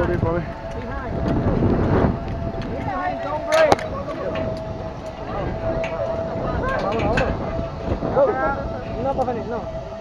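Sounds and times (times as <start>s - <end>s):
people talking: 0.0s - 1.6s, 2.5s - 9.8s
wind rumble on microphone: 0.0s - 10.0s.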